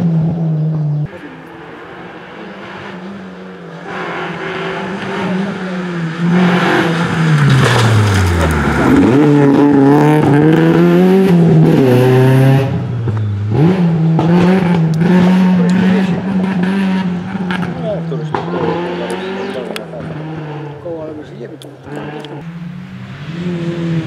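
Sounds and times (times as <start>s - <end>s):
rally car engine accelerating: 0.0s - 24.0s.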